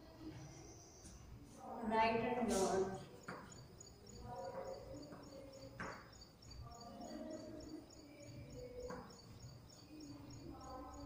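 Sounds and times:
faint high chirping: 0.0s - 11.0s.

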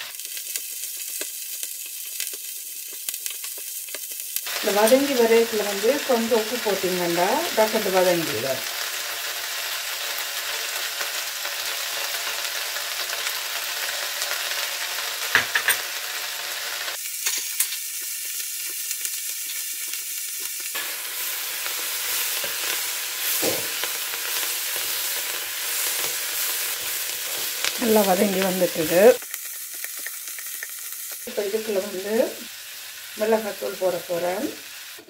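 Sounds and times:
vegetables sizzling in a pot: 0.0s - 35.0s.

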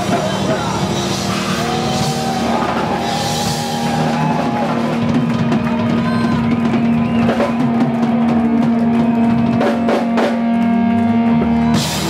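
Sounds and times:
drum fills: 0.0s - 12.0s
live rock band: 0.0s - 12.0s.

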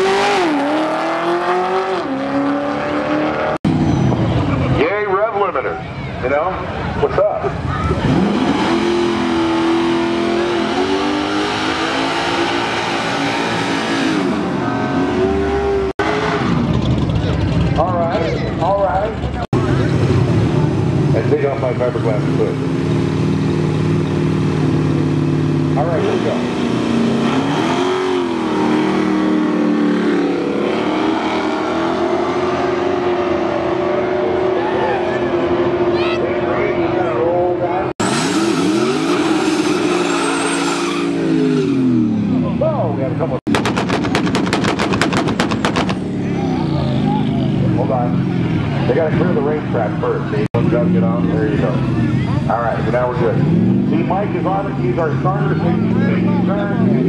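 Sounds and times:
drag car engines revving: 0.0s - 57.0s
rapid sharp pops: 43.5s - 46.1s.

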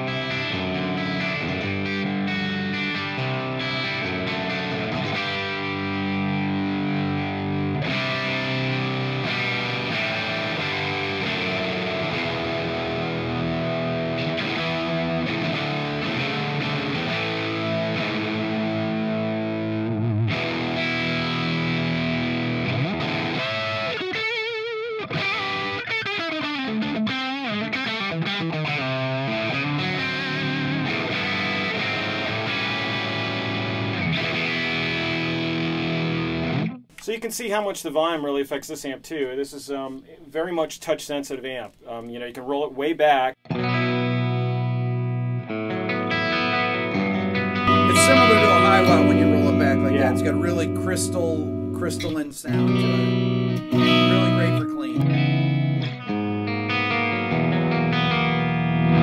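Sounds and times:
overdriven electric guitar: 0.0s - 36.9s, 43.4s - 59.0s.

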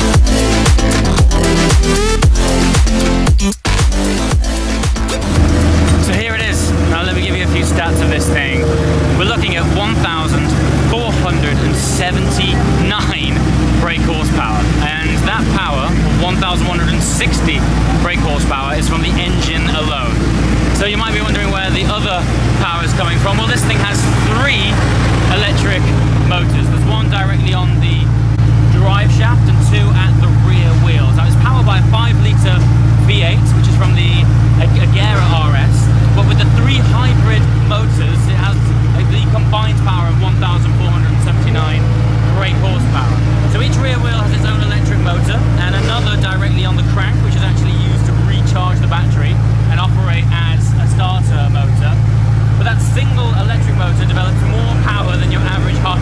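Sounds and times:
car engine idling: 0.0s - 56.0s
people talking: 5.3s - 56.0s.

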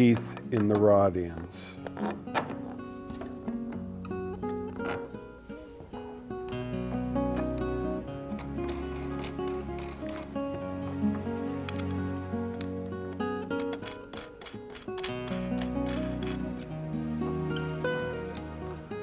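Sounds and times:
plucked acoustic guitar: 1.8s - 19.0s.

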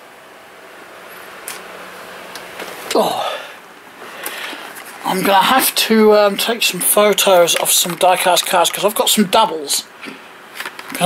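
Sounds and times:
steady low hiss: 0.0s - 11.0s
man grunting: 2.9s - 3.6s.

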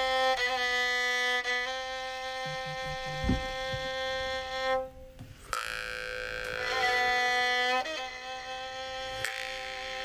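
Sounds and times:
bowed fiddles playing held notes: 0.0s - 10.0s.

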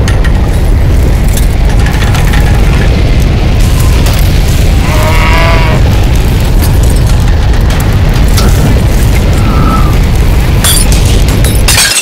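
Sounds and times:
faint crackles: 0.0s - 11.7s
deep rumble of tornado wind: 0.0s - 12.0s.

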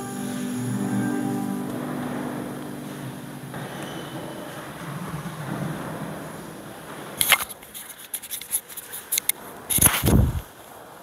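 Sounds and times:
soft background music: 0.0s - 3.8s.

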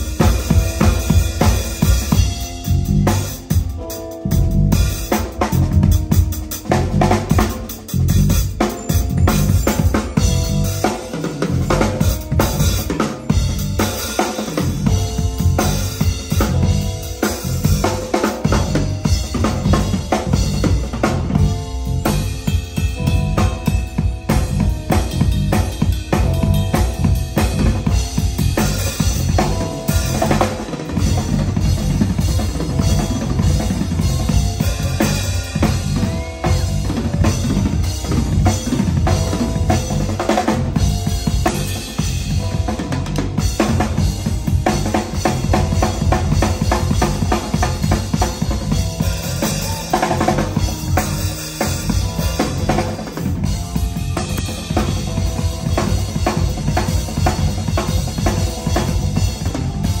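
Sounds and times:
cymbals: 0.0s - 60.0s
latin jazz band playing: 0.0s - 60.0s.

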